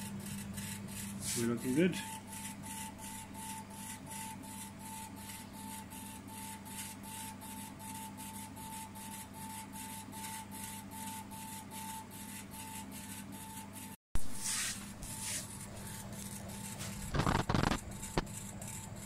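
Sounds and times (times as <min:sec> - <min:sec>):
laser head pulsing whine: 0:00.0 - 0:13.6, 0:14.2 - 0:19.0
steady low hum: 0:14.2 - 0:19.0.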